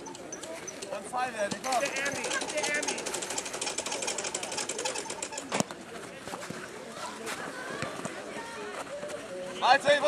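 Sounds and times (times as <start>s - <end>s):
fast ticking rattle: 0.0s - 5.6s
faint children's voices: 0.0s - 10.0s.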